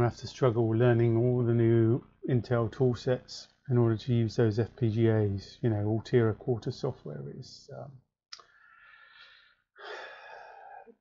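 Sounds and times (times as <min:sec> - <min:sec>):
man breathing: 0:08.4 - 0:11.0.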